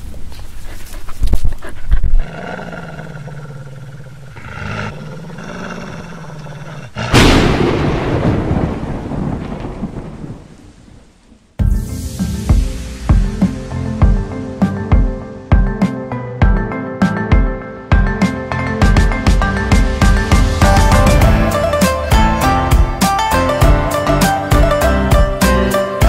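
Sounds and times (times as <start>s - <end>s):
sharp thunder cracks: 7.0s - 13.4s
rumbling thunderclap: 7.0s - 14.2s
music: 11.6s - 26.0s.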